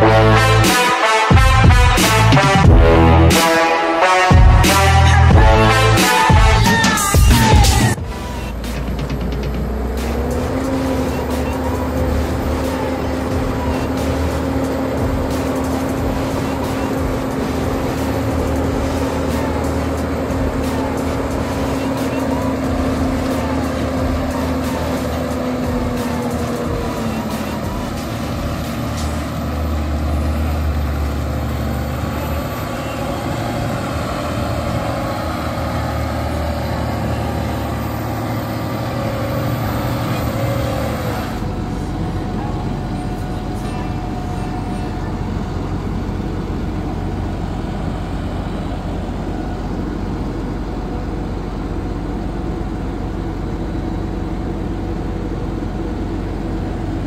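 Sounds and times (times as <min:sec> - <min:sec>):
steady whine: 0:00.0 - 0:57.0
tractor diesel engine under load: 0:00.0 - 0:57.0.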